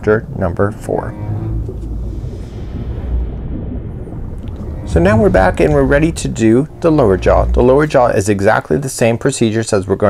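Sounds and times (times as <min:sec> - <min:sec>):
muffled underwater rumbling: 0:00.0 - 0:10.0.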